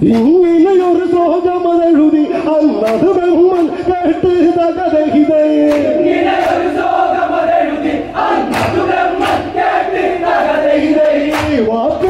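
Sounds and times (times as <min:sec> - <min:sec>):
hand claps: 0:00.0 - 0:01.5, 0:02.8 - 0:04.2, 0:05.6 - 0:07.1, 0:08.3 - 0:12.0
men chanting in chorus: 0:02.2 - 0:12.0.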